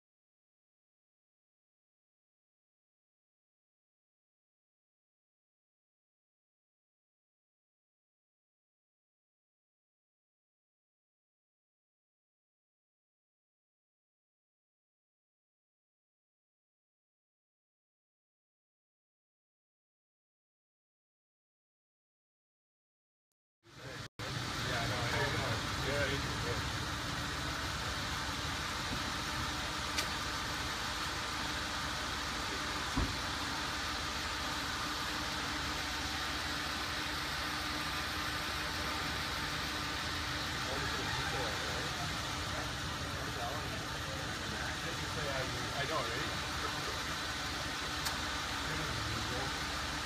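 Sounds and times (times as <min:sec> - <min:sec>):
car engine idling: 0:23.7 - 0:50.0
faint indistinct voices: 0:40.3 - 0:50.0.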